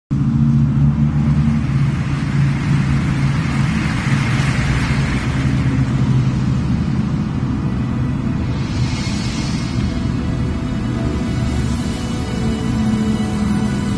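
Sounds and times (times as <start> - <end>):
motorway traffic noise: 0.1 - 13.9
tyre hiss of passing vehicle: 1.1 - 13.9.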